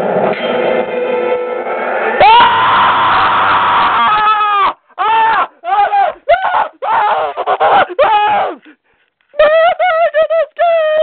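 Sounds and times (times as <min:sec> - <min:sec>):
high-pitched wordless cries: 0:09.4 - 0:11.0.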